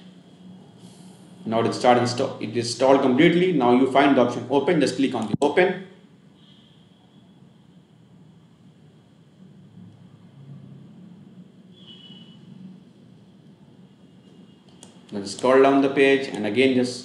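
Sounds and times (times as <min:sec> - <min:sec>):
faint low hum and hiss: 0:00.0 - 0:17.0.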